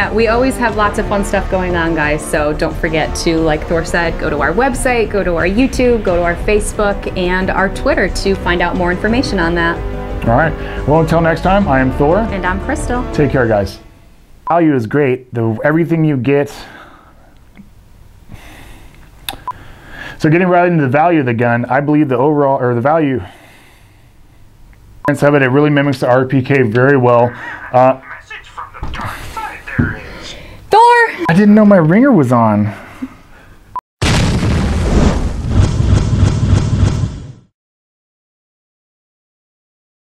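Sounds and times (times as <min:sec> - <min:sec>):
soft intake of breath: 0:10.6 - 0:10.9, 0:16.6 - 0:17.4, 0:18.3 - 0:20.2, 0:23.2 - 0:24.6, 0:29.0 - 0:30.7
explosion sound effect: 0:34.0 - 0:37.5.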